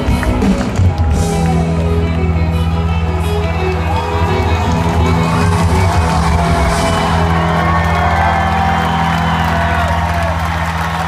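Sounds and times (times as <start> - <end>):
crowd clapping: 0.0 - 11.0
crowd whooping and cheering: 0.0 - 11.0.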